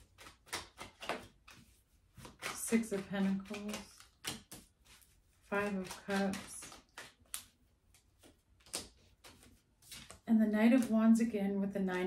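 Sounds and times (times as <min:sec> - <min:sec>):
cards shuffling: 0:00.0 - 0:11.0.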